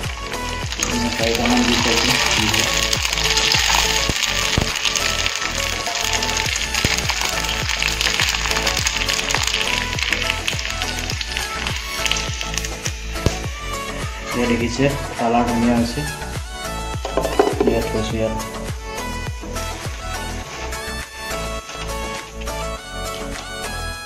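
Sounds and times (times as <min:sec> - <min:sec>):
frying in hot oil sizzling: 0:00.0 - 0:18.3
background music with steady beat: 0:00.0 - 0:24.0.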